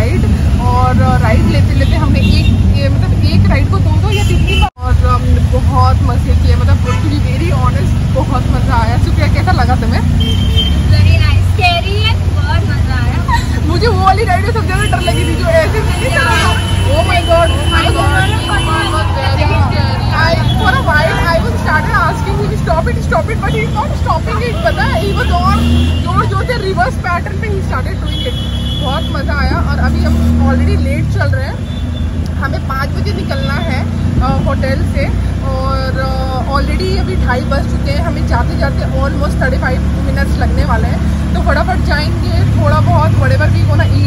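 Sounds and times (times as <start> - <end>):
woman talking: 0.0 - 10.2, 10.9 - 31.6, 32.3 - 44.0
auto-rickshaw engine and road rumble: 0.0 - 44.0.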